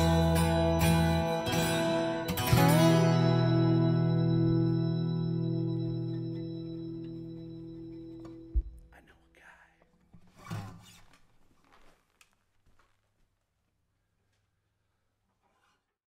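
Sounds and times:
band chord ringing out: 0:00.0 - 0:08.6
faint whispery breaths: 0:08.9 - 0:09.9.

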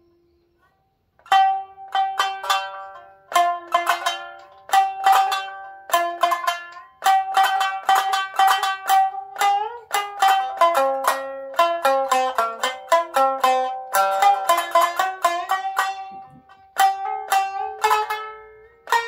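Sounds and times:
shamisen plucked notes: 0:01.2 - 0:19.0.

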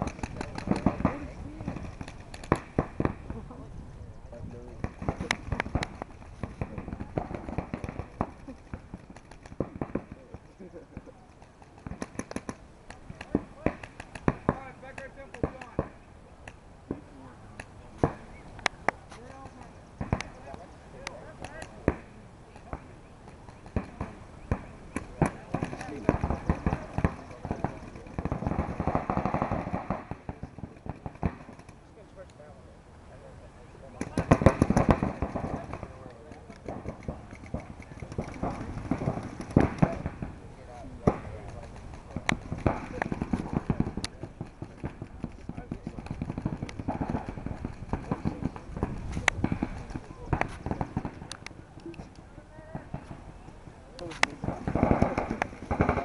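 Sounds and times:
paintball markers popping: 0:04.8 - 0:16.6.

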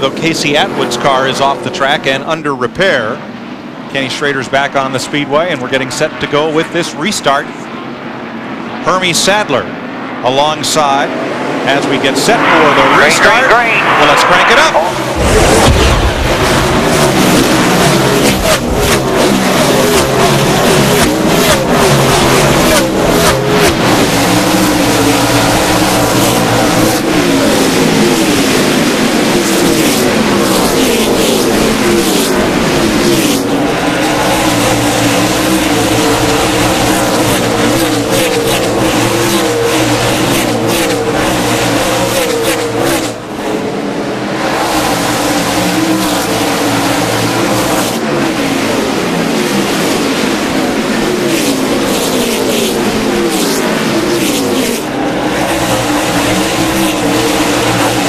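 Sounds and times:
race car engines passing: 0:00.0 - 0:58.0.

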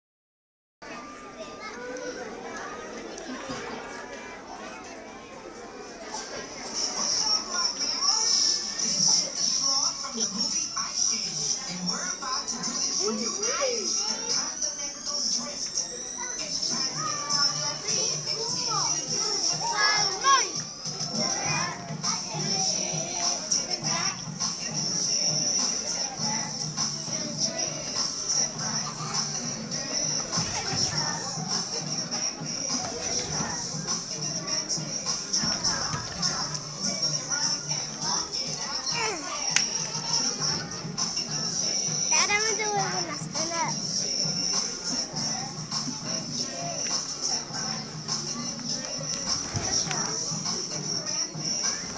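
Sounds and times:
indistinct chatter of voices: 0:00.8 - 0:51.9
music playing: 0:01.0 - 0:51.9.

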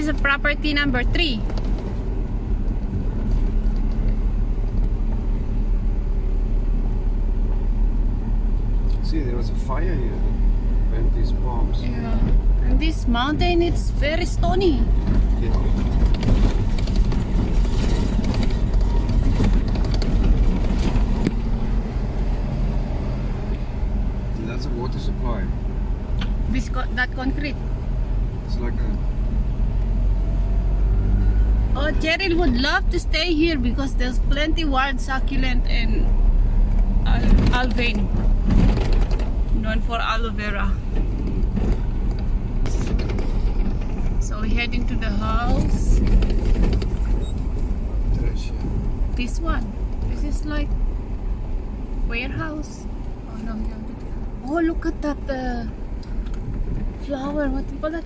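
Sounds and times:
car rumbling on gravel: 0:00.0 - 0:58.0.

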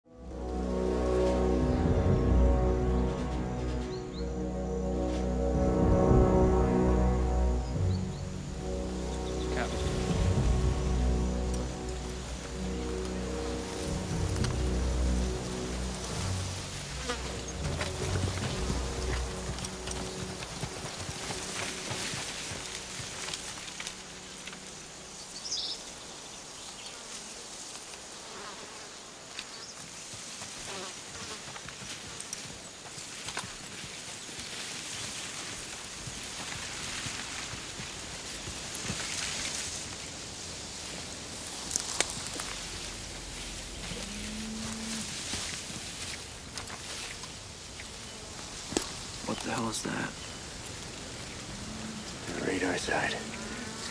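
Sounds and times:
quiet music score: 0:00.1 - 0:28.5, 0:34.6 - 0:53.9
brush rustling: 0:00.2 - 0:53.9
insects in grass: 0:00.2 - 0:53.9.

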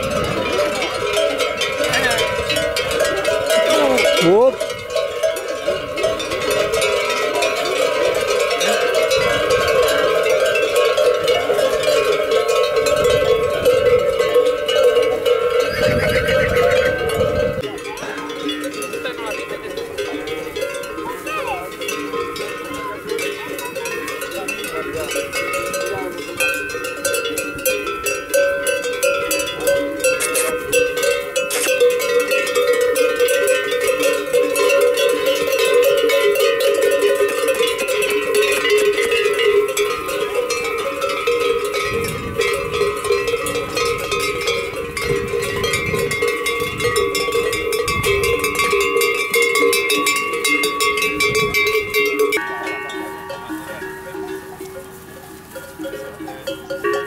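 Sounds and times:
livestock bells clanking: 0:00.0 - 0:57.0.

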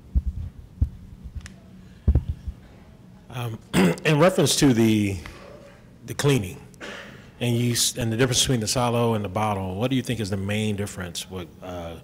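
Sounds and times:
microphone handling thumps: 0:00.0 - 0:01.4, 0:02.0 - 0:02.6
steady low hum: 0:00.0 - 0:12.0.

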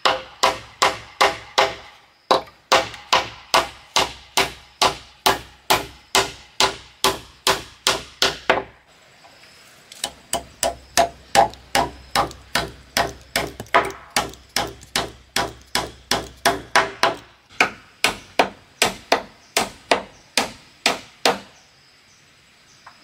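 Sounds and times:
hammer striking nails into wood: 0:00.0 - 0:08.7, 0:10.0 - 0:21.5.

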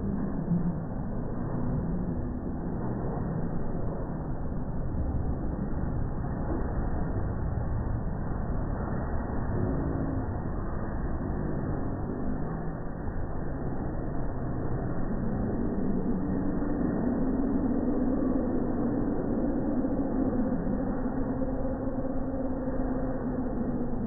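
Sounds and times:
fairground ride mechanical rumble: 0:00.0 - 0:24.0
steady mechanical hum: 0:00.0 - 0:24.0.

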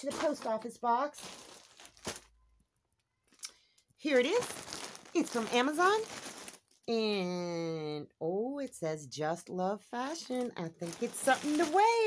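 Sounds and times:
parcel rustling: 0:00.0 - 0:06.9, 0:10.1 - 0:12.0.

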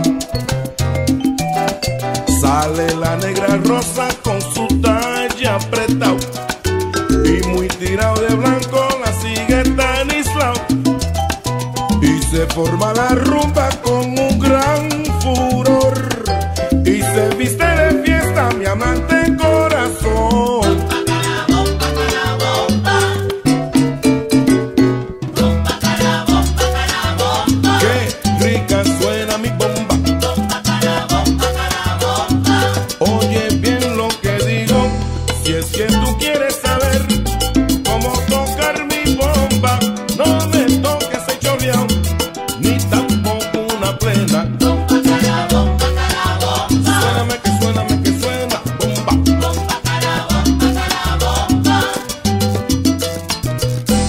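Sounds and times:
pitched instruments: 0:00.0 - 0:54.0
salsa bass line: 0:00.0 - 0:54.0
salsa percussion: 0:00.0 - 0:54.0
band instruments: 0:34.7 - 0:36.4.

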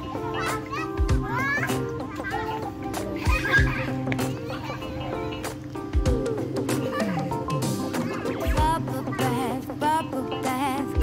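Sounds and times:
children's excited voices: 0:00.0 - 0:05.6, 0:06.3 - 0:09.8
background music: 0:00.0 - 0:11.0.

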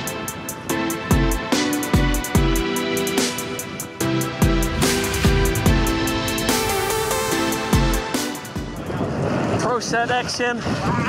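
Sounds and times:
electronic music: 0:02.2 - 0:08.9
wind rushing: 0:03.3 - 0:09.6.

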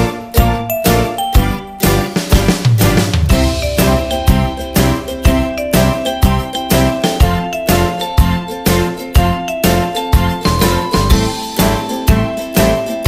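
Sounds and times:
bell-like children's music: 0:00.0 - 0:13.0.

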